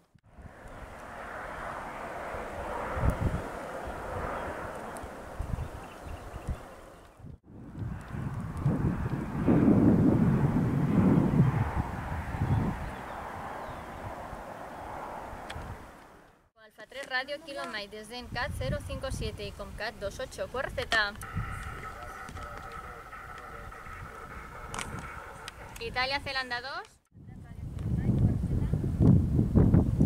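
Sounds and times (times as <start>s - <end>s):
wind gusting on microphone: 0.0s - 16.4s, 17.6s - 30.0s
rushing outdoor noise: 0.0s - 26.7s.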